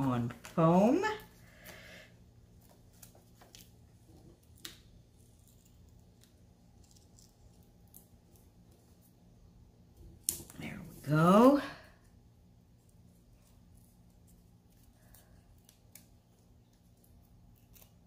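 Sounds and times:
low room hum: 0.0s - 18.0s.

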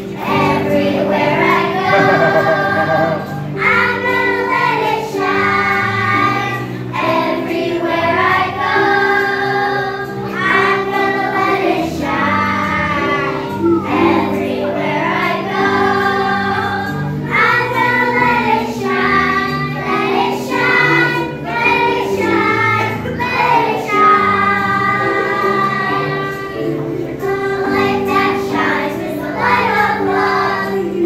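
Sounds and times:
young children singing in unison: 0.0s - 31.0s
instrumental accompaniment: 1.6s - 4.7s.

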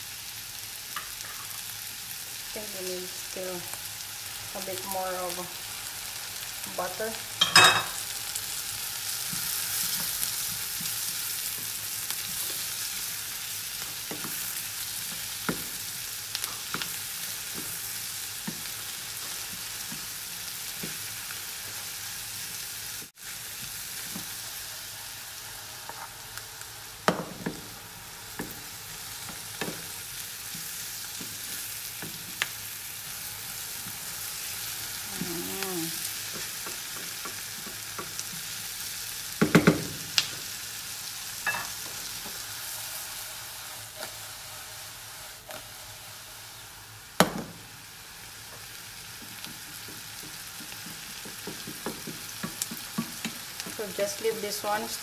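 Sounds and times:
food sizzling in frying pan: 0.0s - 55.0s.

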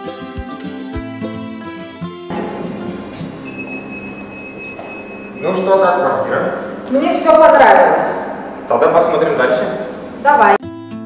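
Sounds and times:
high-pitched lift tone: 2.3s - 8.6s.

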